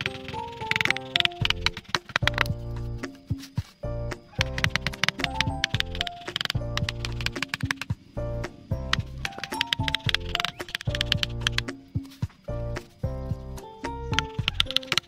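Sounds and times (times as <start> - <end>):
sharp percussive clicks: 0.0 - 2.6, 4.3 - 8.0, 8.9 - 11.9, 14.2 - 15.0
melodic background music: 0.0 - 15.0.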